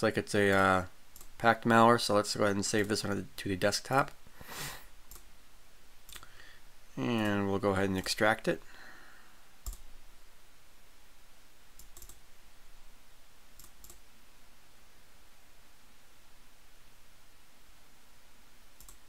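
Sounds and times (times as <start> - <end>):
low steady hiss: 0.0 - 19.0
faint computer mouse clicks: 5.1 - 5.3, 9.6 - 9.8, 11.8 - 12.2, 13.6 - 14.0, 18.8 - 19.0.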